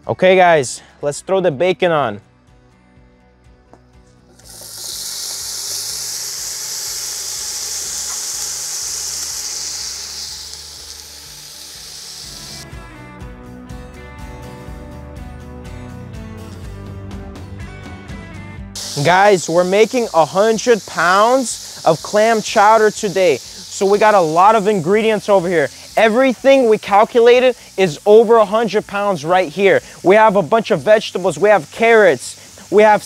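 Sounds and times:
background music: 0.0s - 33.0s
bacon sizzling in a pot: 4.3s - 12.8s, 18.8s - 33.0s.

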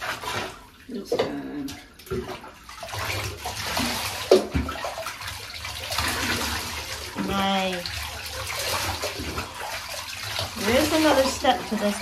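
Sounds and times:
water splashing into bathwater: 0.0s - 12.0s.

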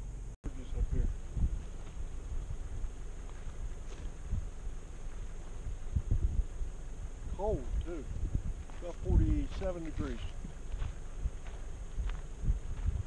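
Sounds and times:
wind buffeting the microphone: 0.6s - 13.0s.

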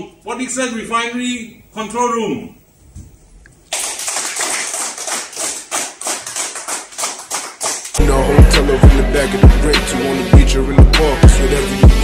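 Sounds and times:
people clapping: 3.7s - 8.0s.

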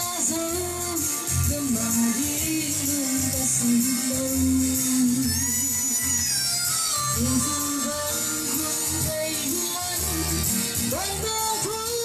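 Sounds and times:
woman singing into microphone: 0.0s - 6.4s, 7.1s - 12.0s
backing music with bass pulse: 0.0s - 12.0s.

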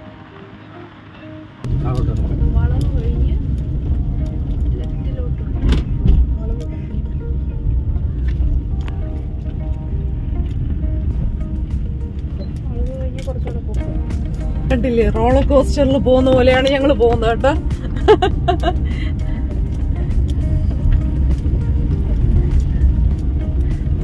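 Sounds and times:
car engine and tyres rumbling: 0.0s - 24.0s
music: 0.0s - 24.0s
voices: 12.4s - 18.8s.

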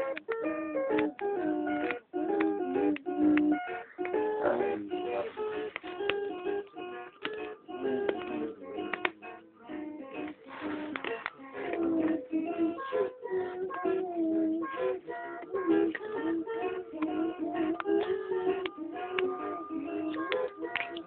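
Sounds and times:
electronic toy playing tunes: 0.0s - 21.0s.

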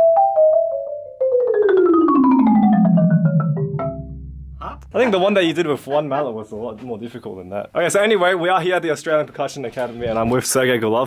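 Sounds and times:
marimba descending run: 0.4s - 5.9s.

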